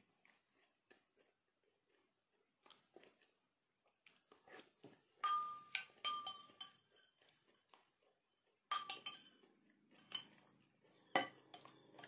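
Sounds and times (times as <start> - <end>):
metal spoon clinking against glass: 5.2 - 7.1, 8.7 - 9.4, 10.0 - 10.4, 11.1 - 12.0.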